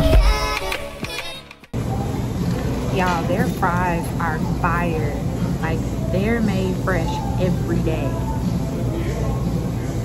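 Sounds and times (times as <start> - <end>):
restaurant dining room hum: 1.8 - 10.0.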